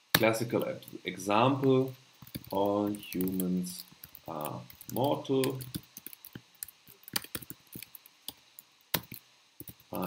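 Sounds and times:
computer keyboard keystroke clicks: 0:04.4 - 0:08.4, 0:09.0 - 0:09.8.

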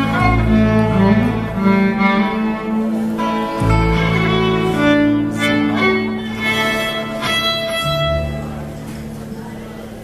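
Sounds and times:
fiddle bowed tune: 0:00.0 - 0:09.4
steady low drone notes: 0:00.0 - 0:09.9.

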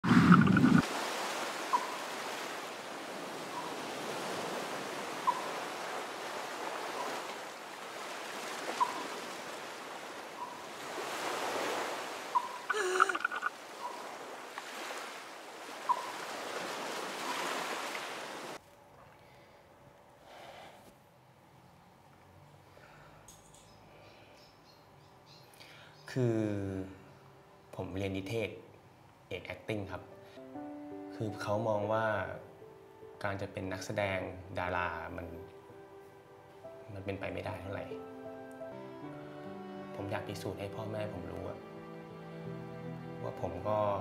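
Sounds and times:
waves surging: 0:00.0 - 0:18.6.

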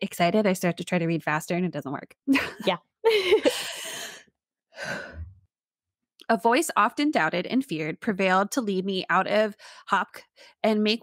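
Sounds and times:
person laughing: 0:02.3 - 0:04.2.

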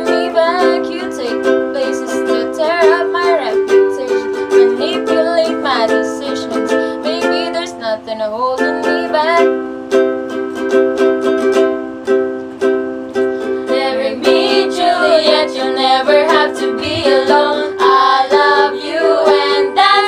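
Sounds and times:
girls singing: 0:00.0 - 0:07.8, 0:13.6 - 0:20.0
ukulele strumming: 0:00.0 - 0:20.0.

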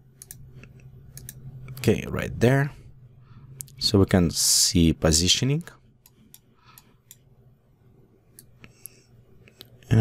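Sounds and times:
faint low hum: 0:00.0 - 0:10.0
computer mouse clicks: 0:00.2 - 0:01.8.

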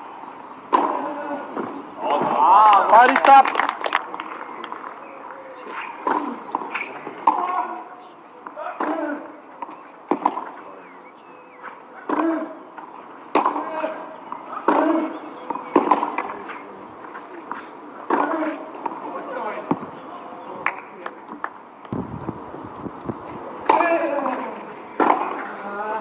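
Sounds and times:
racket hitting tennis ball: 0:00.7 - 0:01.7, 0:05.7 - 0:07.5, 0:14.6 - 0:16.3, 0:23.2 - 0:24.4, 0:25.0 - 0:25.5.

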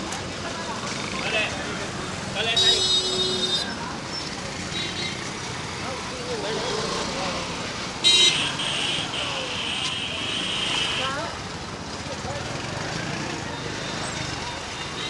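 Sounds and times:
busy street traffic: 0:00.0 - 0:15.0
crowd chatter: 0:00.0 - 0:15.0
loud vehicle horn: 0:08.0 - 0:11.1.

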